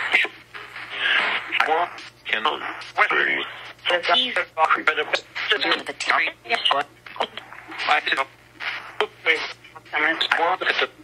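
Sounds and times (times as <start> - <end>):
chopped speech fragments: 1.4 - 8.3, 9.1 - 11.0.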